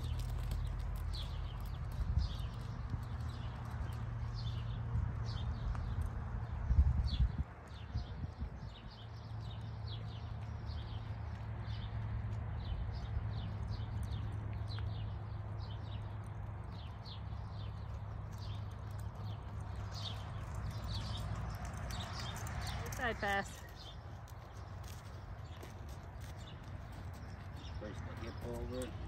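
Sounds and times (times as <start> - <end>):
hoofbeats on sand: 0.0 - 29.0.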